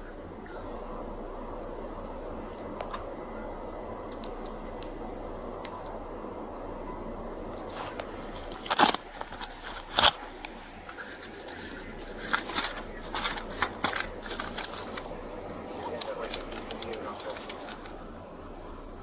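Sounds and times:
car cabin hum: 0:00.0 - 0:19.0
camera rubbing against clothing: 0:07.7 - 0:18.0.

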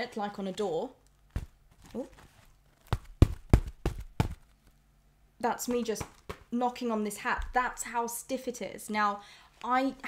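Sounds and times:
knuckles knocking on stiff hat: 0:02.9 - 0:04.4.

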